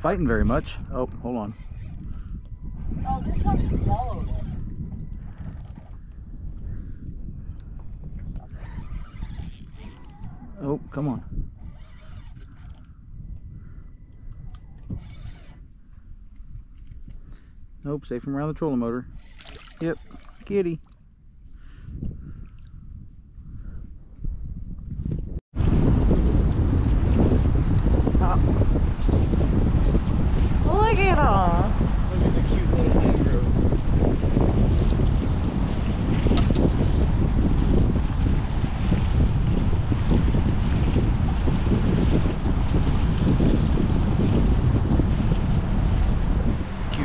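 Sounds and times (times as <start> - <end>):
wind buffeting microphone: 0.0 - 47.0
fishing reel clicking and ratcheting: 0.2 - 2.5, 3.5 - 6.2, 7.9 - 10.4, 11.6 - 13.0, 14.8 - 15.6, 16.2 - 17.3, 19.1 - 20.6
steady low rumble: 21.2 - 47.0.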